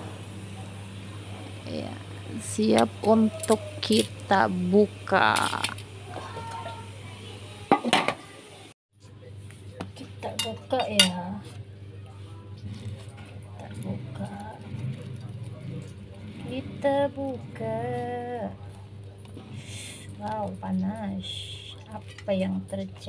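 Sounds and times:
cutlery clinking against a plate: 10.3s - 11.2s.

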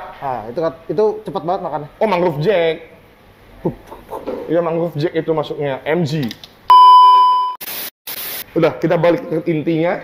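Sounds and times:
test-tone beep: 6.7s - 7.6s
tv static hiss: 7.6s - 8.6s.

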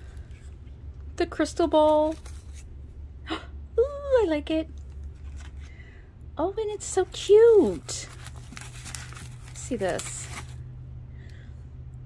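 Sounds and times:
steady low hum: 0.0s - 12.0s
woman speaking: 1.2s - 2.2s, 3.7s - 4.8s, 6.4s - 8.2s, 9.6s - 10.4s.

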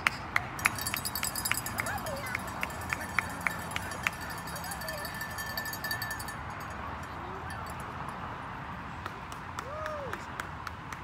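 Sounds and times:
rhythmic hand clapping: 0.0s - 6.0s, 9.0s - 11.0s.

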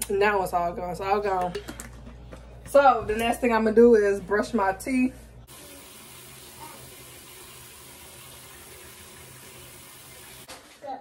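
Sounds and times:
water running from a tap: 5.5s - 10.5s.

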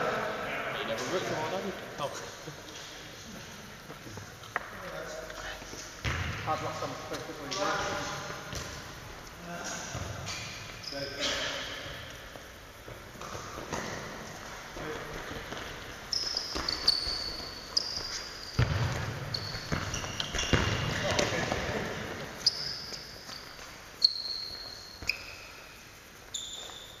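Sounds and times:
players' voices and calls: 0.0s - 16.8s
football kicked and bouncing: 6.0s - 6.4s, 18.6s - 21.3s.

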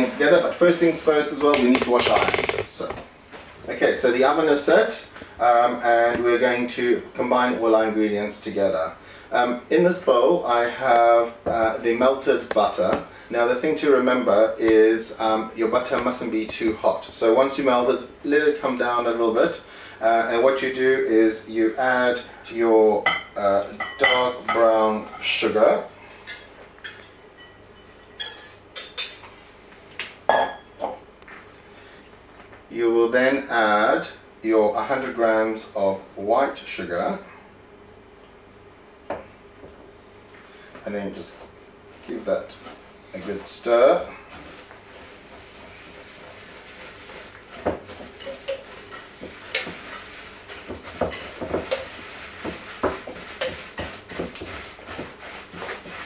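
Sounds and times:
whisk clinking against glass bowl: 47.5s - 55.0s.

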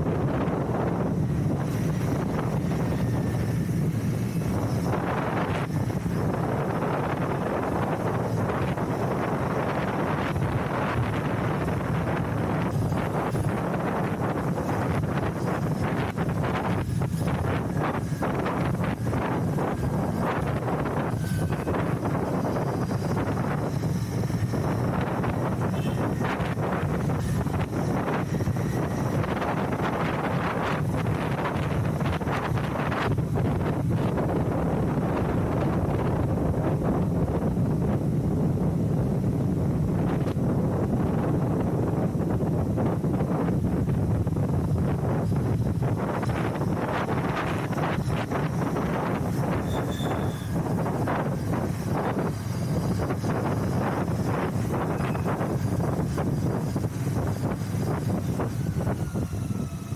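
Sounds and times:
motorcycle engine running: 0.0s - 59.9s
wind buffeting microphone: 0.0s - 59.9s.

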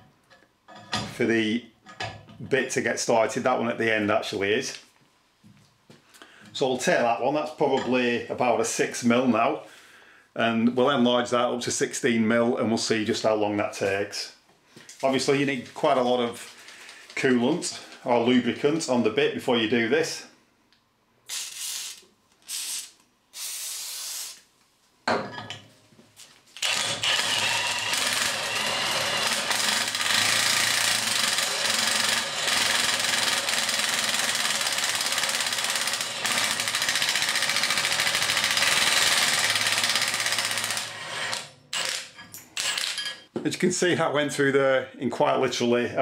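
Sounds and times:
aerosol spray bursts: 21.3s - 24.4s
impact wrench hammering: 26.7s - 43.2s.

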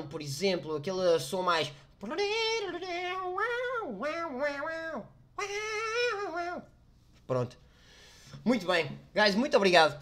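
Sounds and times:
man imitating saxophone: 2.8s - 6.7s.

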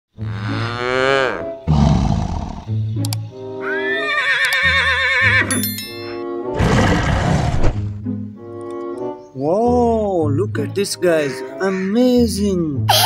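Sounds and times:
music: 0.1s - 13.0s
sharp clicks: 3.0s - 3.3s
wavering animal calls: 11.0s - 12.2s.

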